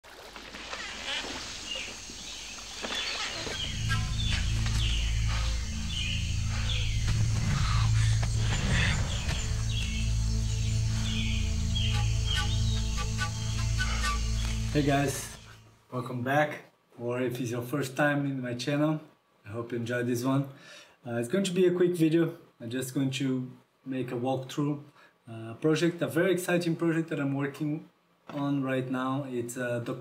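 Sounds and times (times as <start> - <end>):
birds chirping: 0.6 - 15.6
low music drone: 3.5 - 15.6.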